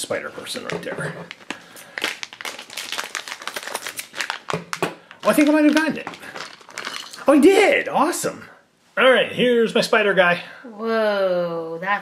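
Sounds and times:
plastic packet crackling: 0.3s - 7.8s.

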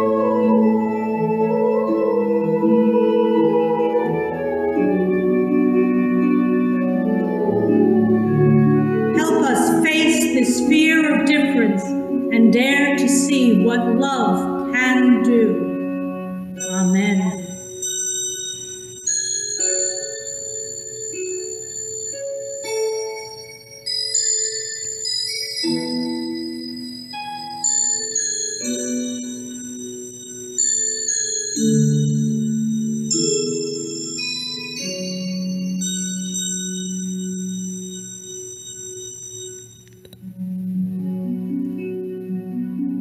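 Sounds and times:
keyboard chords with bell-like tones: 0.0s - 43.0s.

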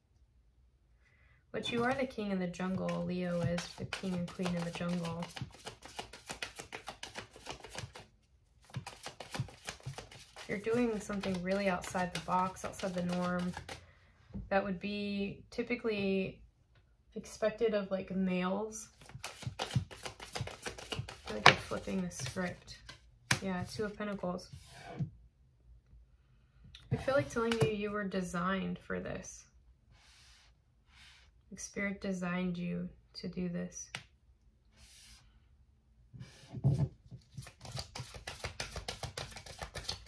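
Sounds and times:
woman's voice: 1.6s - 5.3s, 10.5s - 13.6s, 14.5s - 16.4s, 17.2s - 18.9s, 21.3s - 22.8s, 23.4s - 24.5s, 26.9s - 29.5s, 31.5s - 33.9s
cards being shuffled: 2.7s - 13.8s, 18.9s - 24.0s, 37.2s - 40.0s.

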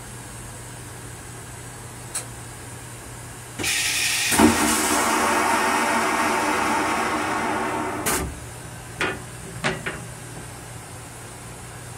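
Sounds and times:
toilet flushing: 3.6s - 8.3s.

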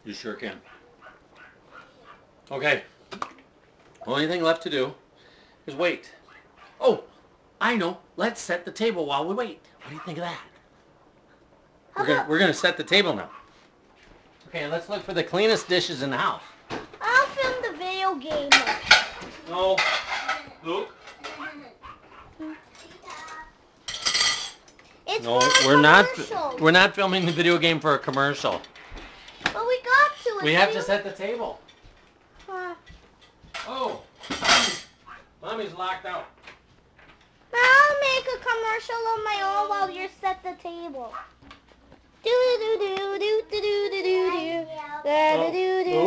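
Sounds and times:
dishes and silverware clinking: 18.5s - 21.5s, 22.8s - 26.1s, 33.2s - 35.0s.

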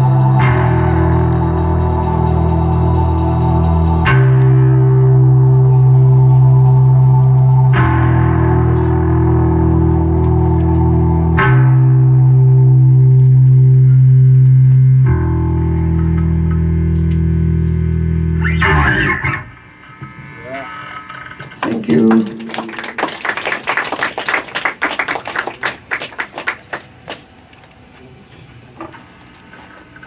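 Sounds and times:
rock band distorted chord: 0.0s - 21.4s
audience clapping and cheering: 21.4s - 27.8s.

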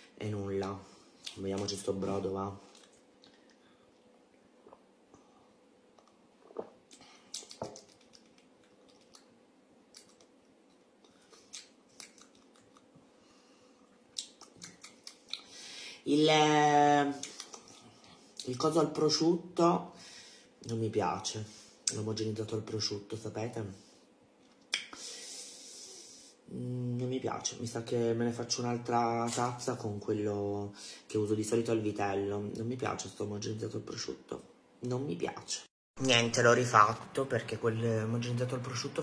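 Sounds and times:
wet lip smacks: 6.0s - 9.3s, 9.9s - 12.9s, 14.1s - 15.5s, 17.2s - 17.8s, 24.5s - 25.0s
soft breathy hiss: 14.8s - 16.1s, 19.9s - 20.6s, 21.3s - 21.9s, 24.8s - 27.0s, 30.6s - 31.1s.

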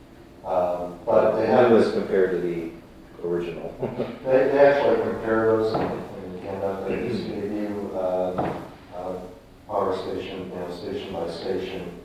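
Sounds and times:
person talking: 0.5s - 12.0s.

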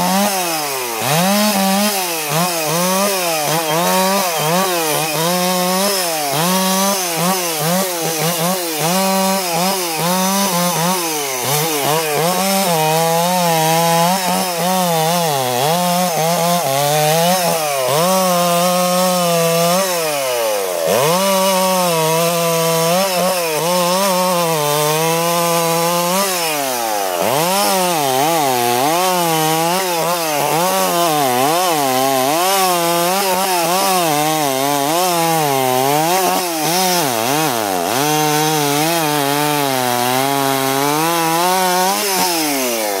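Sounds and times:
chainsaw cutting limbs: 0.0s - 43.0s.

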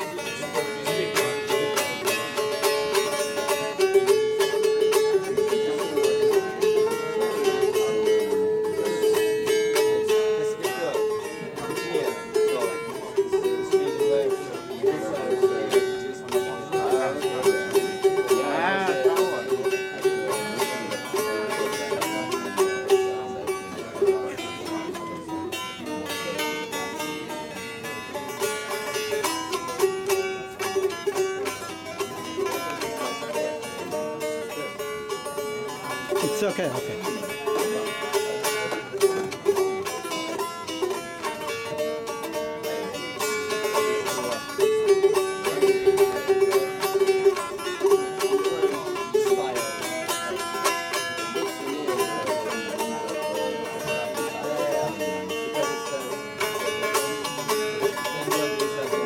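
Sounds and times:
lute strummed rapidly: 0.0s - 59.0s.

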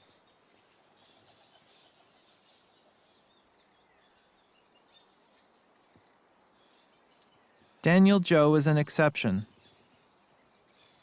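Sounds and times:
distant birds chirping: 0.0s - 11.0s
man speaking: 7.8s - 9.5s.

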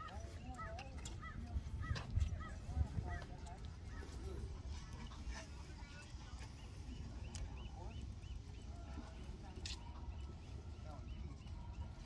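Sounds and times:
faint indistinct voices: 0.0s - 12.0s.

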